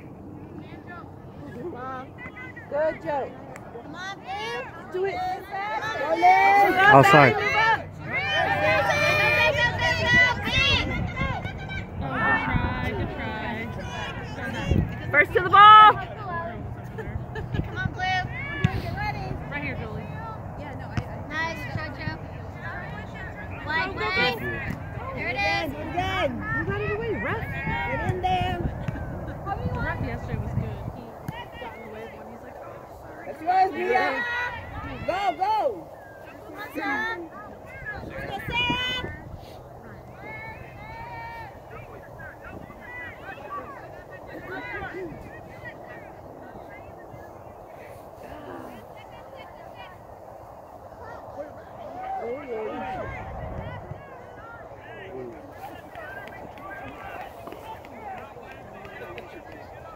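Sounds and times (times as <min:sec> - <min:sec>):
distant shouts and chatter: 0:00.0 - 0:59.9.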